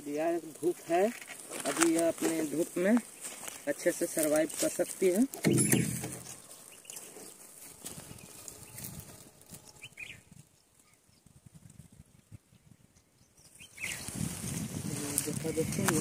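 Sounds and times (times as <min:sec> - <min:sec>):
rustling in dry leaves: 0:00.0 - 0:12.1, 0:13.5 - 0:16.0.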